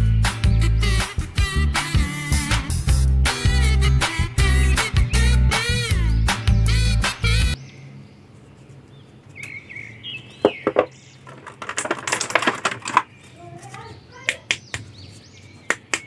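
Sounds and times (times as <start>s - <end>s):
birds chirping: 4.4s - 11.7s, 12.8s - 16.0s
plastic tray crinkling and clicking: 11.3s - 13.8s.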